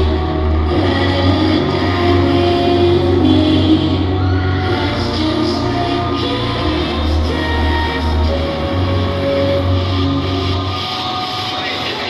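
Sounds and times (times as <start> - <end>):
dance music over loudspeakers: 0.0 - 12.0.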